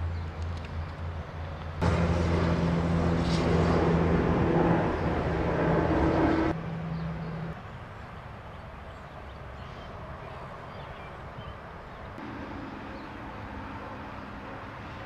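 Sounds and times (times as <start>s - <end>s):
motor vehicle running: 0.4s - 7.6s, 12.2s - 15.0s
steady low hum: 1.8s - 7.5s.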